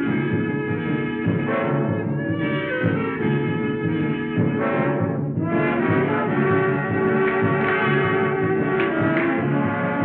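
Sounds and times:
brass-led dance band music: 0:00.0 - 0:10.0.

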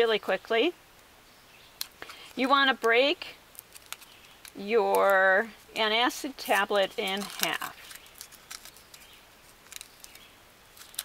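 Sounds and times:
foil packet crinkling: 0:01.8 - 0:02.8, 0:03.5 - 0:05.3, 0:06.1 - 0:11.0.

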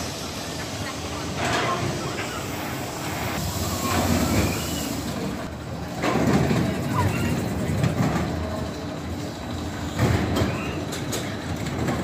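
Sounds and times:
roller coaster wheels rumbling: 0:00.0 - 0:12.0.

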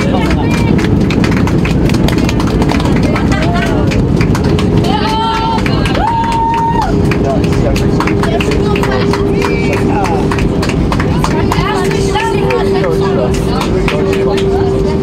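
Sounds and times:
jet engine and wheels rumble: 0:00.0 - 0:15.0
passengers talking: 0:00.0 - 0:15.0
steady whine: 0:00.0 - 0:15.0.

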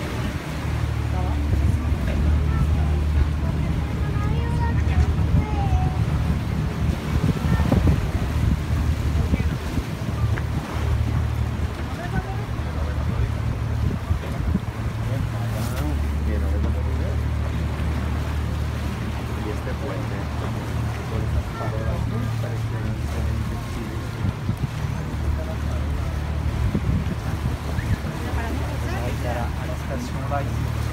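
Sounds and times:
wind buffeting microphone: 0:00.0 - 0:19.4, 0:20.2 - 0:30.9
boat engine low drone: 0:00.0 - 0:30.9.

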